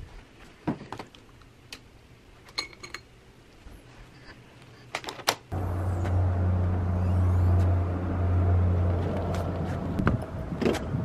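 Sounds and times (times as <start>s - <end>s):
car engine idling: 5.5s - 10.5s.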